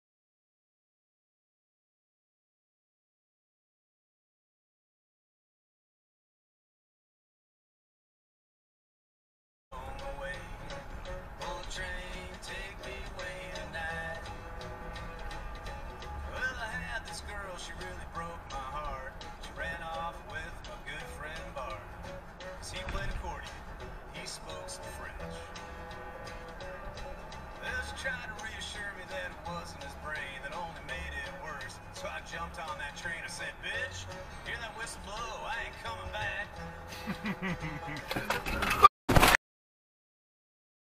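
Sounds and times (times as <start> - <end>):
song with singing: 9.8 - 15.2, 16.2 - 25.6, 27.5 - 36.7.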